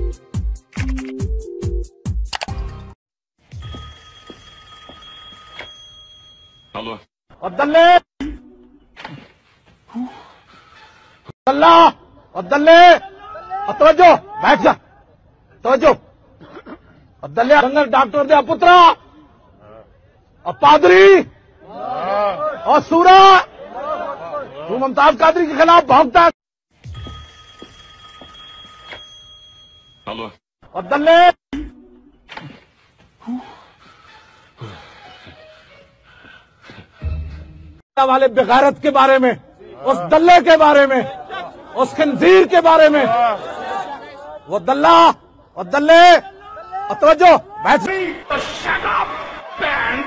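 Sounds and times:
phone alarm tone: 3.6s - 6.8s, 26.8s - 30.1s.

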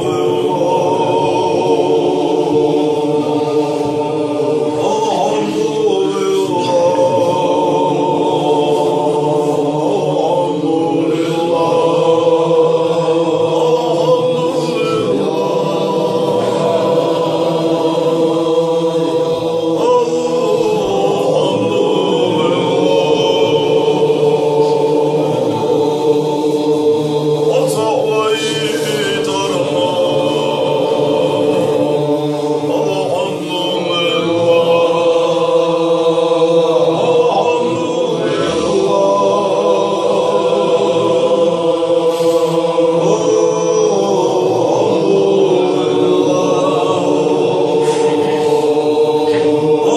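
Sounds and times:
men chanting in unison: 0.0s - 49.9s.

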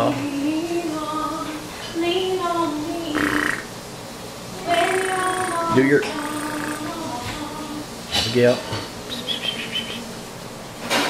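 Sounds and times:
baby croaky vocal sounds: 4.6s - 7.2s.

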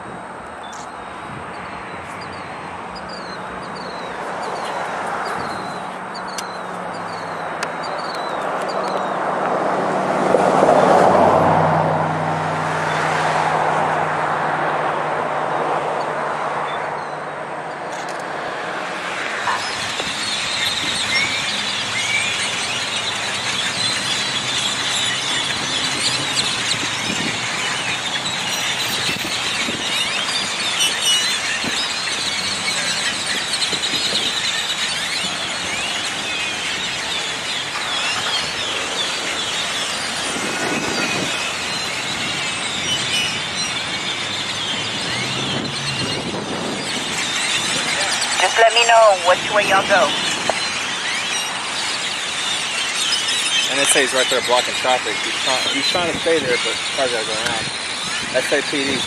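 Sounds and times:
high-pitched squeaks and chirps: 0.6s - 9.2s, 19.3s - 59.0s.

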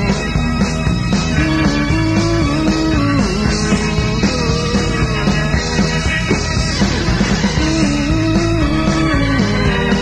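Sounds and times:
bass: 0.0s - 10.0s
held melody line: 0.0s - 10.0s
steady drum beat: 0.0s - 10.0s.

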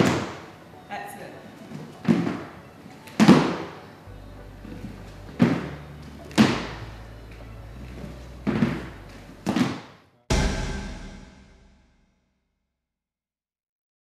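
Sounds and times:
background music: 0.0s - 12.0s
loud music hit: 10.3s - 12.2s.

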